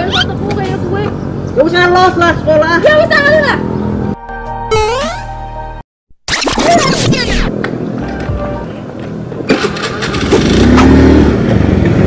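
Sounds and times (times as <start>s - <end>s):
background music: 3.6s - 5.8s
record scratch effect: 4.7s - 5.3s, 6.3s - 7.5s.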